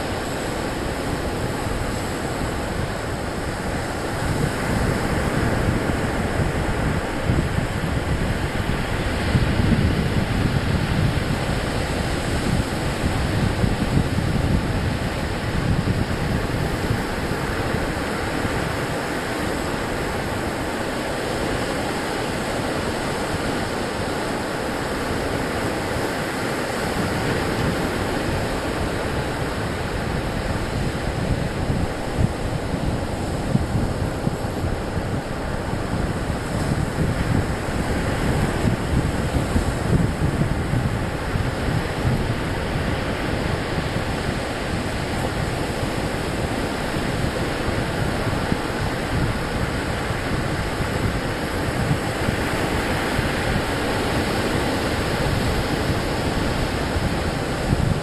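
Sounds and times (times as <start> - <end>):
ocean surf breaking: 0.0 - 58.0
wind buffeting microphone: 0.0 - 58.0.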